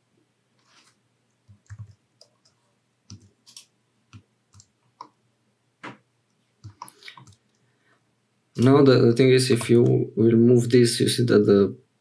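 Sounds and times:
keyboard and mouse clicks: 1.4s - 5.2s, 6.6s - 7.6s, 9.5s - 10.0s
person speaking: 8.5s - 11.8s.

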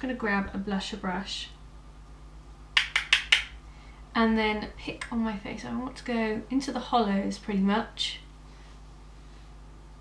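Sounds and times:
blusher brush clicks: 2.8s - 3.6s.

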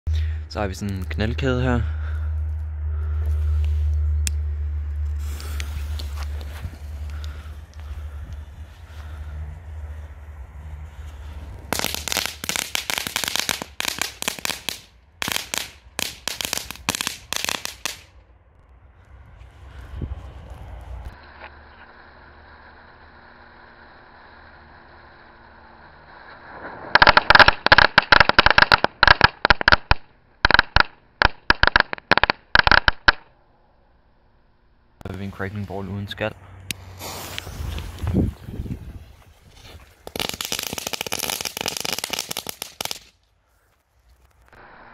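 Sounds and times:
firecracker string bangs: 11.7s - 18.1s.

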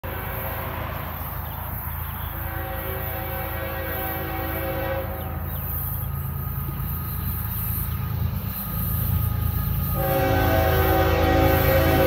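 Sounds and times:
locomotive air horn: 0.0s - 1.4s, 2.3s - 12.0s.

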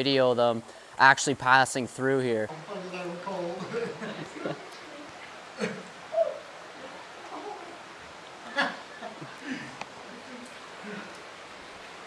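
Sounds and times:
stream water running: 0.0s - 12.0s
short voice-like call: 6.1s - 6.5s.

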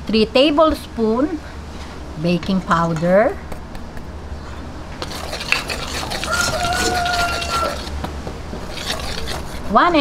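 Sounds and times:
whisk scraping in metal bowl: 5.0s - 8.0s, 8.6s - 10.0s.

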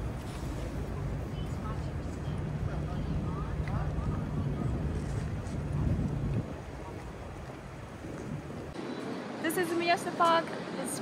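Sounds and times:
wind buffeting microphone: 0.0s - 8.8s.

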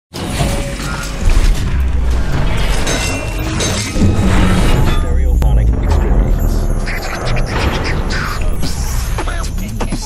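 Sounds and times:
clattering ratcheting metal gears: 0.2s - 10.0s
deep booming rumble: 1.2s - 9.6s.

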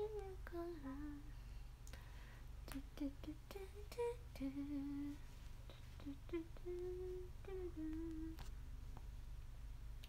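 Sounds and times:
woman humming softly: 2.7s - 8.5s.

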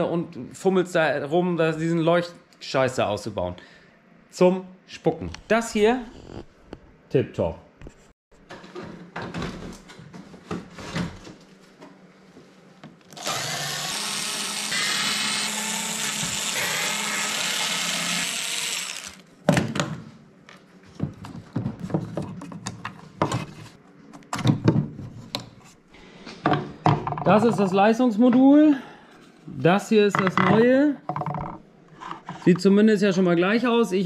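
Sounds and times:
cordless screwdriver whirring: 13.2s - 19.2s.

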